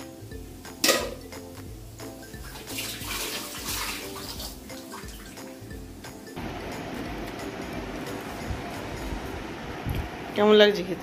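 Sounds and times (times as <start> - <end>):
water running and splashing: 2.4 - 5.6.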